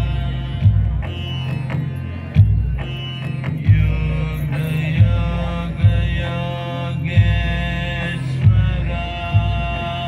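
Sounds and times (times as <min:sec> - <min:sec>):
deep bass hits: 0:02.4 - 0:10.0.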